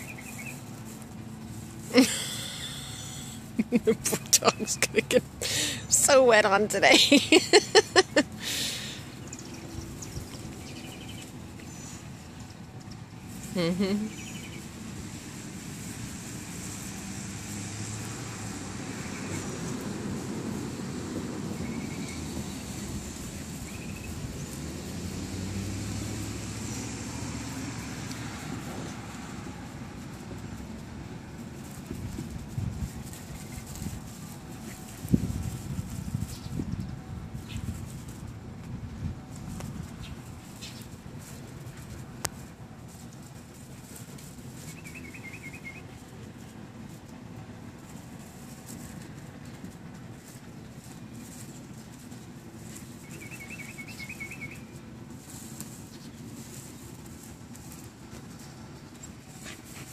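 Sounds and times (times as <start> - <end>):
vehicle engine humming: 0.0 - 59.9
bird whistling: 44.8 - 45.8, 53.1 - 54.7.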